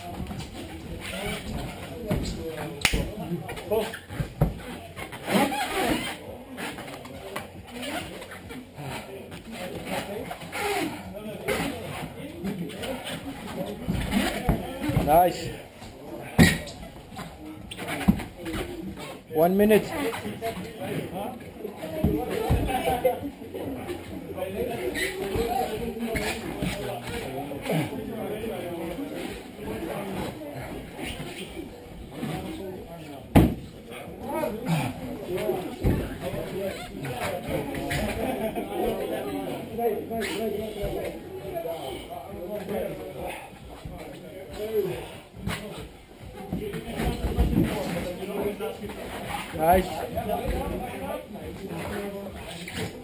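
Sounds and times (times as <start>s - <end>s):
indistinct human voices: 19.9s - 53.0s.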